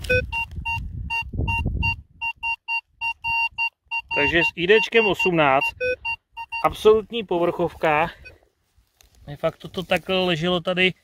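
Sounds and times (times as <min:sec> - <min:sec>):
metal detector beeping: 0:00.0 - 0:08.4.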